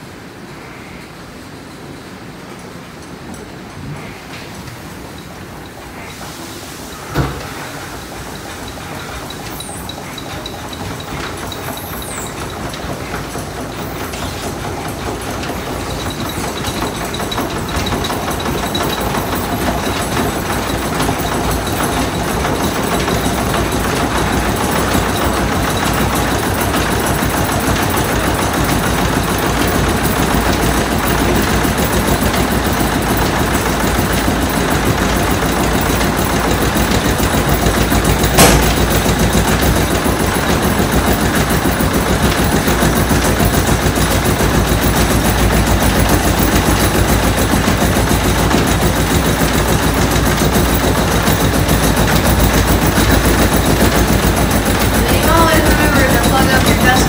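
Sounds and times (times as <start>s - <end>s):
mill machinery rumbling: 1.2s - 57.0s
sharp knock: 38.4s - 38.9s.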